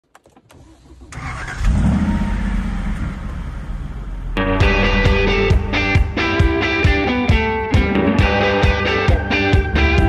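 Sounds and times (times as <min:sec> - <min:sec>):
vehicle engine starting and idling: 0:00.1 - 0:07.0.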